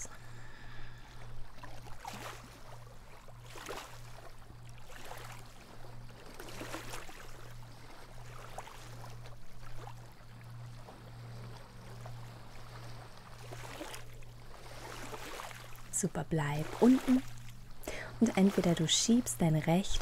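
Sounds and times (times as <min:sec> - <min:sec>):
low steady hum: 0:00.0 - 0:20.0
small waves lapping on beach: 0:00.0 - 0:20.0.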